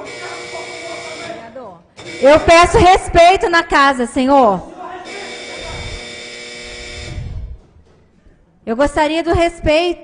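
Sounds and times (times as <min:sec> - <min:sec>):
electrical buzz from sound system: 0:00.0 - 0:03.8, 0:05.0 - 0:07.8
microphone handling thuds: 0:06.8 - 0:08.1.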